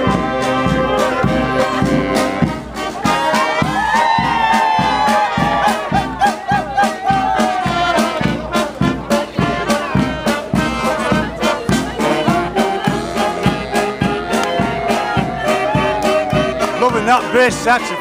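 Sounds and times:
brass band playing lively tune: 0:00.0 - 0:18.0
steady drum beat: 0:00.0 - 0:18.0.

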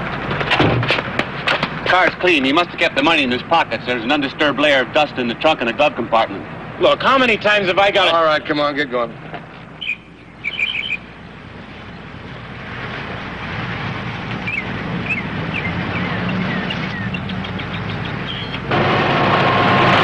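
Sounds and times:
small birds chirping: 0:09.5 - 0:12.2, 0:14.4 - 0:18.7
car driving fast over dirt: 0:11.2 - 0:20.0.

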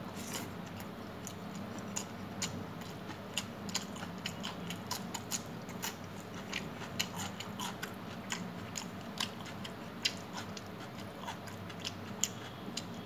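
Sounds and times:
chewing: 0:00.2 - 0:13.0.

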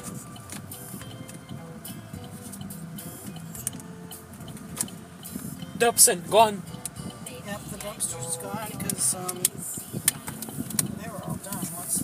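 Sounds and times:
indistinct voices in a car: 0:00.0 - 0:12.0
road and engine noise: 0:00.0 - 0:12.0.

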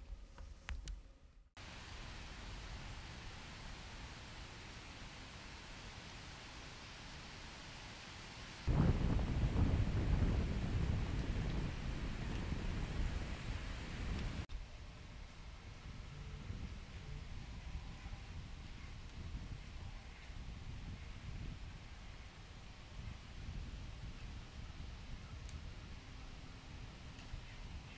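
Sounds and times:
wind hissing: 0:01.6 - 0:27.9
gusty wind rumble on microphone: 0:08.6 - 0:14.5, 0:15.1 - 0:27.9.

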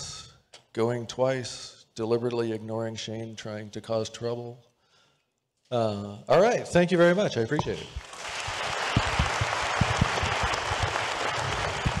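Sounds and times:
audience applauding: 0:08.0 - 0:12.0.

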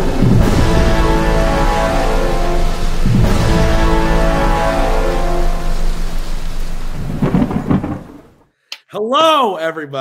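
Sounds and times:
held music chords: 0:00.0 - 0:06.9
rain: 0:00.0 - 0:08.4
rolling thunder: 0:00.0 - 0:08.4.

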